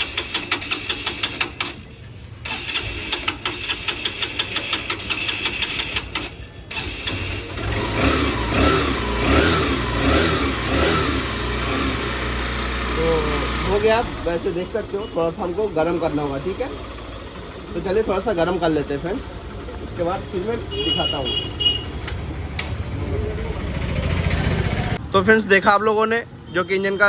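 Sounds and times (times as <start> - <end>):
motorcycle engine revving and idling: 0.0 - 1.8, 2.4 - 25.0
motorcycle engine cranking: 0.0 - 19.3
man talking: 25.0 - 27.0.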